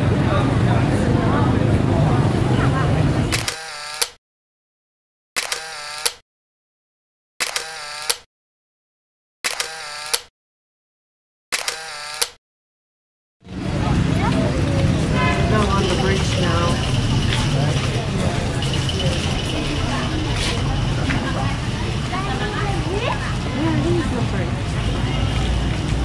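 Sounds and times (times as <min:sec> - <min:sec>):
voices: 0:00.0 - 0:03.4, 0:13.6 - 0:26.0
traffic: 0:00.0 - 0:04.2, 0:13.4 - 0:26.0
camera shutter clicks: 0:03.3 - 0:04.2, 0:05.4 - 0:06.2, 0:07.4 - 0:08.3, 0:09.4 - 0:10.3, 0:11.5 - 0:12.4.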